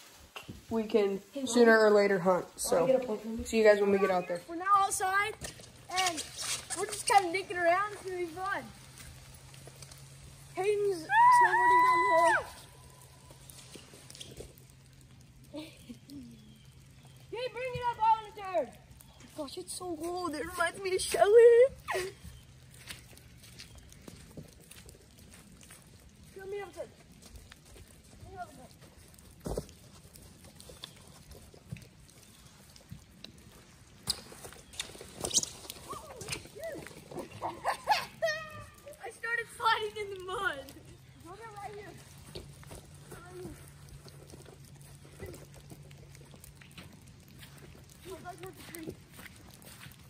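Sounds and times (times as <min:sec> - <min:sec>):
light clicks and crunches: 0:12.4 - 0:50.0.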